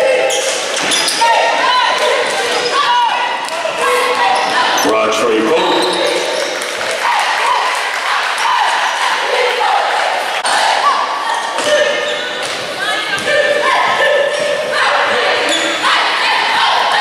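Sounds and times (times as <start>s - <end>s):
crowd chanting: 0.0s - 17.0s
crowd talking and shouting: 0.0s - 17.0s.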